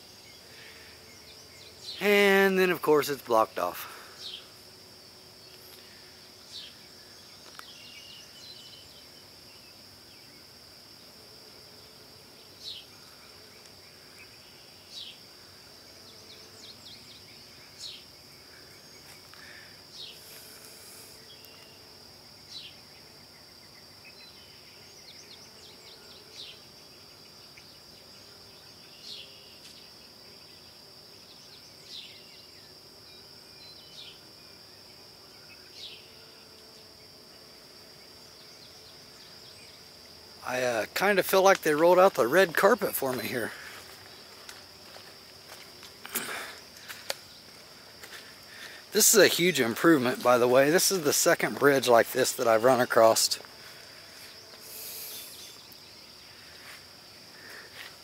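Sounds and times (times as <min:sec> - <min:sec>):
insects droning: 0:00.0 - 0:58.0.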